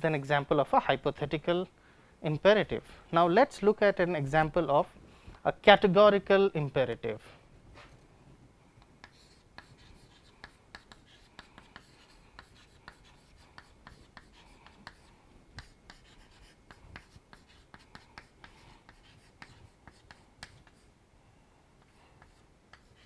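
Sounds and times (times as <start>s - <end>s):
chalk tapping and scratching on chalkboard: 9.0s - 20.9s, 21.8s - 23.0s.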